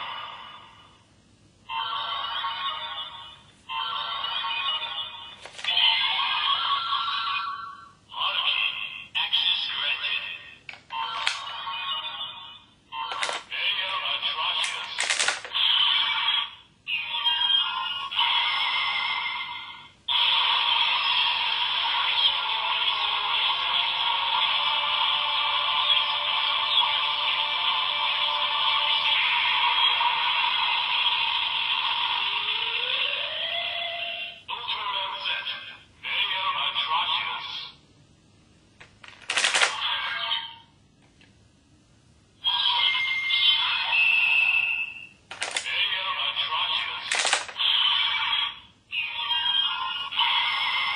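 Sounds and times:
toy sound effects: 1.7 - 23.8, 39.0 - 40.6, 42.4 - 50.9
toy voice calls: 1.7 - 24.5, 34.3 - 37.7, 39.4 - 40.7, 42.4 - 50.9
toy music through small speaker: 1.7 - 37.6, 39.4 - 40.7, 42.4 - 50.9
sharp clicks: 47.1 - 47.6.

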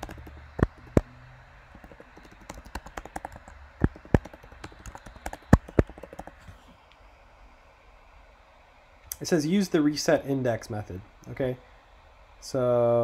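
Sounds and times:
typing on computer keyboard: 0.0 - 1.1, 1.7 - 6.5.

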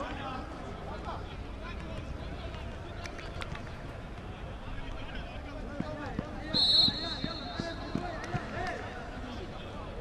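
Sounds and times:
shrill whistle blast: 6.6 - 7.6.

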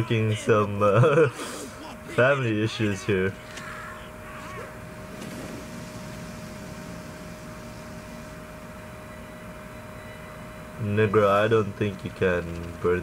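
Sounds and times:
faint constant hum: 0.0 - 13.0.

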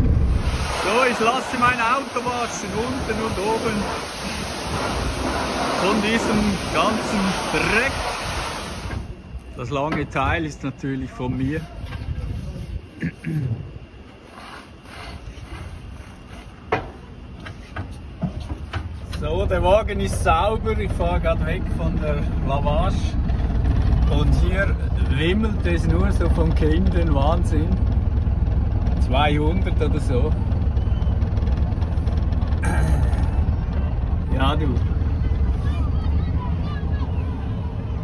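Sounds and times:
diesel engine idling: 0.0 - 8.0, 19.1 - 38.0
brush scrubbing truck: 0.0 - 9.0, 14.0 - 16.7
short noisy burst: 0.0 - 9.2
steady low rumble: 0.0 - 14.1, 18.8 - 38.0.

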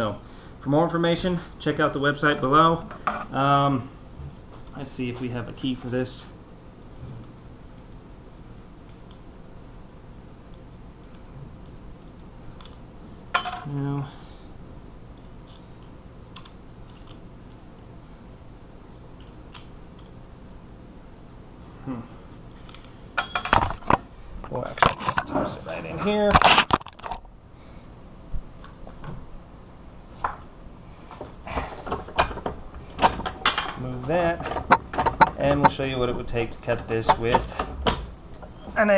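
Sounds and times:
metal objects clinking on workbench: 13.4 - 13.8, 23.2 - 23.8.

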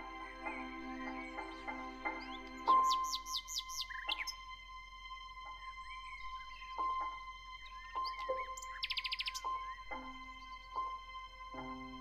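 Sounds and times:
birds chirping: 0.0 - 4.5, 5.4 - 12.0
soft background music: 0.0 - 12.0
high bird trill: 2.3 - 4.4, 7.9 - 9.8.

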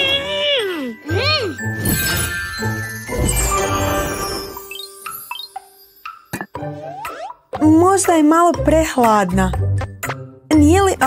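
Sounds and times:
cartoon child's wordless voice: 0.0 - 1.6
children's background music: 0.0 - 11.0
tinkling magic chime: 0.6 - 6.3.

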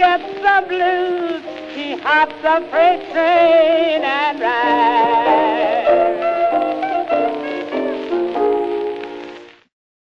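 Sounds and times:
piano: 0.0 - 9.6
clarinet: 4.4 - 9.4.

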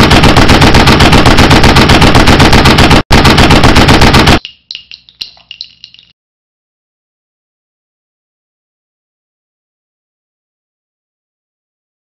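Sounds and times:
machine gun firing bursts: 0.0 - 4.4
clicks and ringing: 4.4 - 6.1.

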